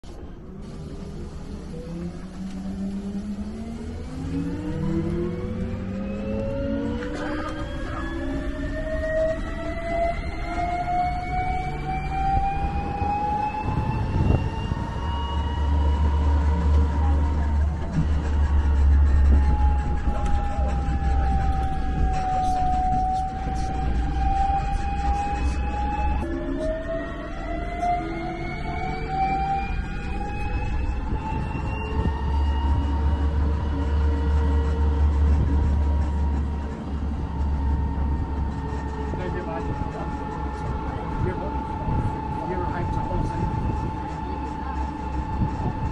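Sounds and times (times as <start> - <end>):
low road rumble: 0.0 - 45.9
vehicle drivetrain whine: 0.0 - 45.9.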